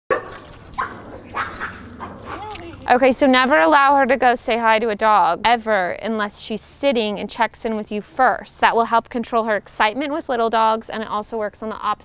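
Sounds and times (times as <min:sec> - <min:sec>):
dog barking: 0:00.1 - 0:02.7.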